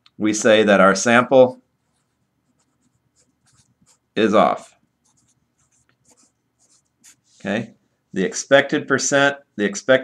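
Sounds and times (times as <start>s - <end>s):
marker scratching on paper: 1.8s - 4.2s, 5.0s - 7.4s.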